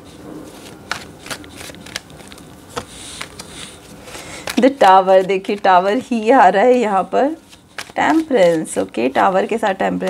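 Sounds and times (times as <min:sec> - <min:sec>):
cards sliding while shuffled: 0:00.0 - 0:09.3
cards snapping: 0:00.6 - 0:06.2, 0:07.5 - 0:08.3.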